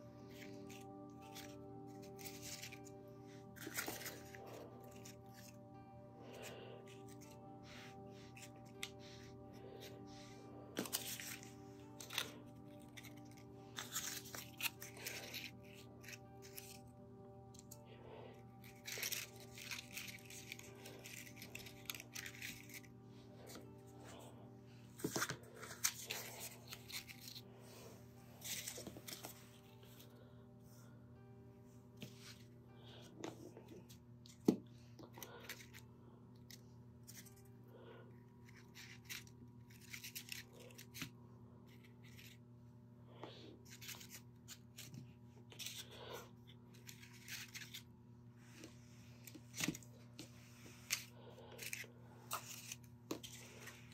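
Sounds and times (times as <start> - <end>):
soft background music: 0.0 - 53.9
paper rustling and crinkling: 0.1 - 5.6, 6.3 - 16.9, 18.4 - 24.3, 25.0 - 30.2, 43.6 - 47.9, 48.5 - 53.9.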